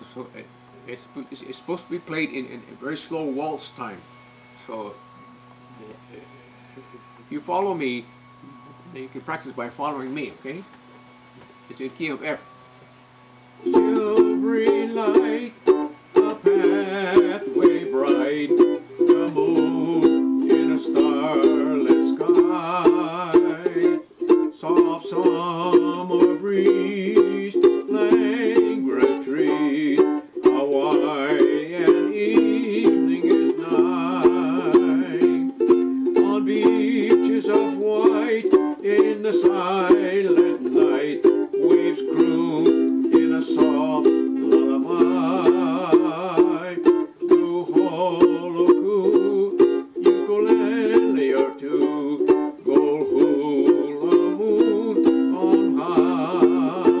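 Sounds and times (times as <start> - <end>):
ukulele strumming slow waltz: 0.6 - 57.0.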